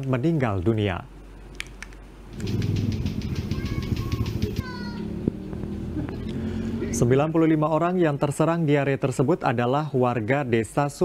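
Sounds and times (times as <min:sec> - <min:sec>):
motorcycle engine running: 0:02.4 - 0:07.1.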